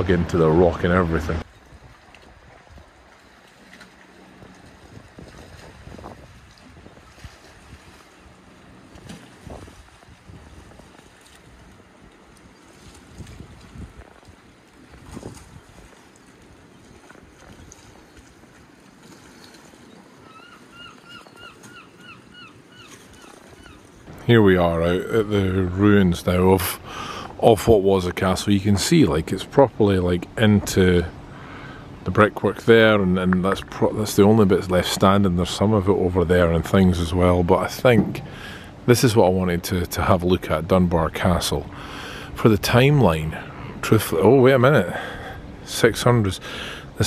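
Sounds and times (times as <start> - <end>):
sea water splashing against rocks: 1.7 - 20.8, 33.2 - 39.2.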